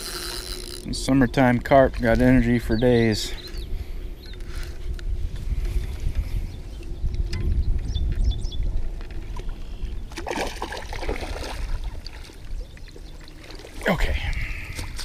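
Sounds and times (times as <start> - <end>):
muffled underwater water sloshing: 8.6 - 15.0
water splashing: 10.1 - 15.0.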